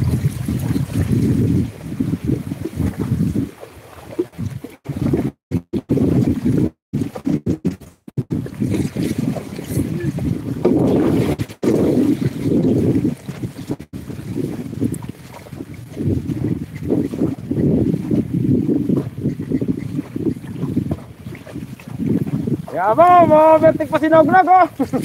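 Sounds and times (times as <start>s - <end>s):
wind buffeting microphone: 0.0s - 7.3s, 8.2s - 25.0s.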